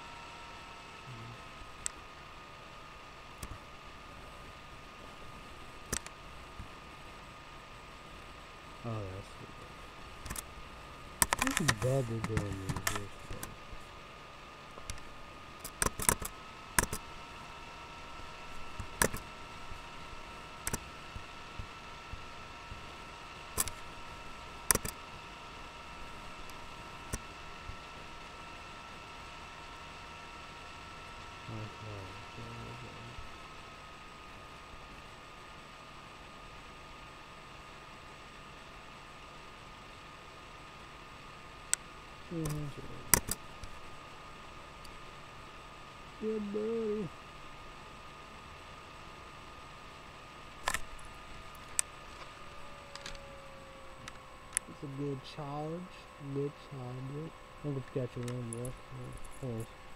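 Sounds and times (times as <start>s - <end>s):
faint electrical hum: 0.0s - 59.9s
low murmur of voice: 1.1s - 1.5s, 31.5s - 33.2s
sharp clicks: 11.2s - 13.6s, 14.8s - 17.0s, 18.8s - 19.2s, 20.6s - 20.8s, 23.6s - 23.8s, 24.7s - 25.0s, 42.4s - 43.8s, 50.6s - 52.3s, 57.8s - 59.4s.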